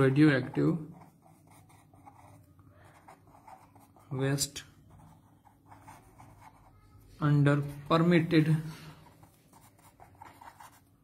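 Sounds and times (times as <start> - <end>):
pen scratching on paper: 0.0 - 6.8, 9.0 - 11.0.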